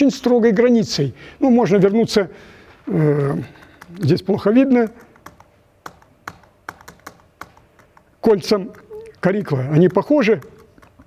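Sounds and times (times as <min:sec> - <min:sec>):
laptop key clicks: 0:04.7 - 0:11.0.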